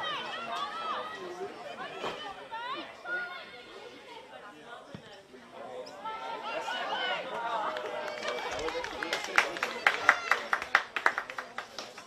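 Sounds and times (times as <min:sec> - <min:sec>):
players shouting and chattering: 0:00.0 - 0:11.9.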